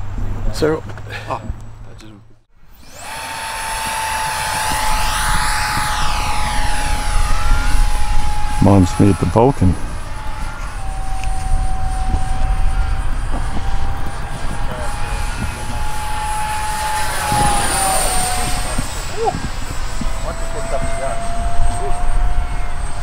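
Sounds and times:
electric fan whining: 2.5s - 23.0s
low rumble: 2.8s - 23.0s.

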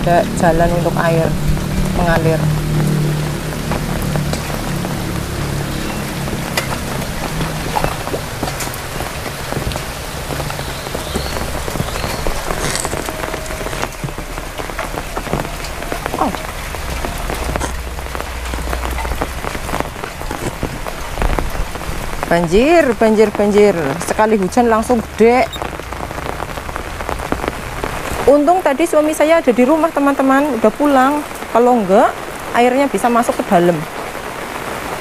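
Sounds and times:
heavy rain falling: 0.0s - 35.0s.

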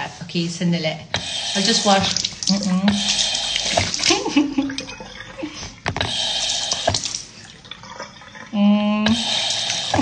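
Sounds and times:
water running into a sink: 1.2s - 10.0s
water splashing on face: 1.6s - 4.9s, 5.5s - 7.5s.

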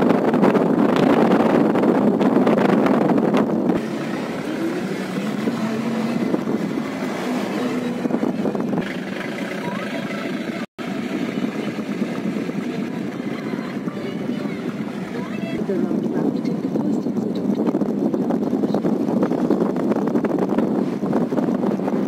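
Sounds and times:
vehicle road and wind noise: 0.0s - 22.0s.

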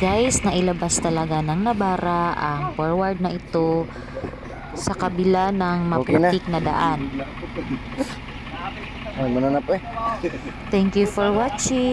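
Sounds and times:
person speaking: 0.0s - 8.2s
pickup engine rumble: 0.0s - 11.9s.

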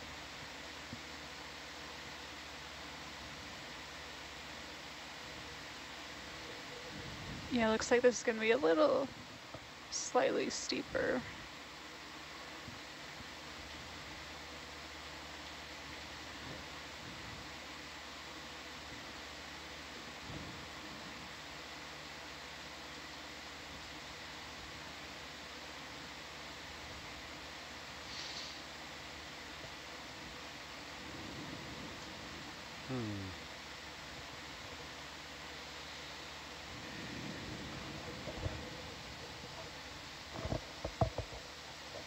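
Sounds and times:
faint electrical hum: 0.0s - 42.0s
low hiss: 0.0s - 42.0s.

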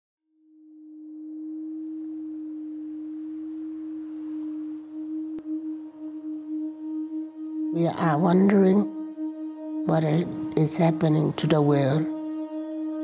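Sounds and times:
low electronic drone: 0.4s - 13.0s
higher electronic tones: 0.7s - 13.0s.

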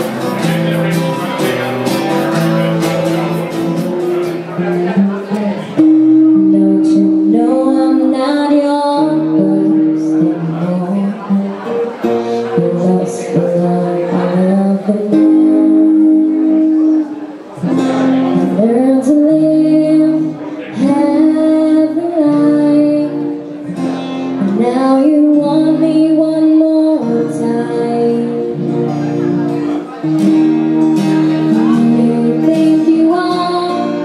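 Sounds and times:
live band playing: 0.0s - 34.0s
woman singing into microphone: 5.8s - 11.5s, 12.6s - 17.0s, 18.4s - 23.5s, 24.4s - 28.9s, 31.3s - 34.0s.

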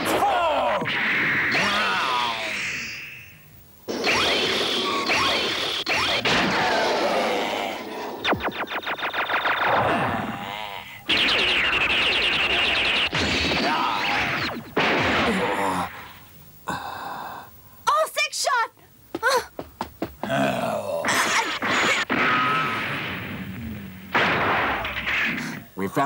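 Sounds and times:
rapid stutter of pulses: 8.1s - 10.4s, 11.0s - 15.1s.

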